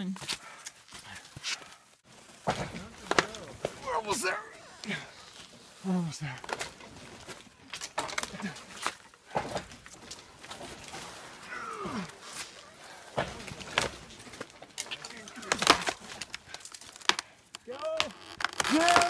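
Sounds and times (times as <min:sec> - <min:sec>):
wood cracking and snapping: 0:02.3 - 0:04.0, 0:06.4 - 0:19.0
falling groan of tree: 0:09.3 - 0:19.0.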